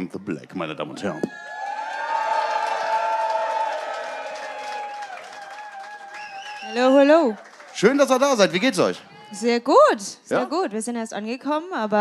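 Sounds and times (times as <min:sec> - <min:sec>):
people cheering and whooping: 0:01.3 - 0:08.2, 0:09.0 - 0:09.6
light clapping: 0:03.2 - 0:08.2.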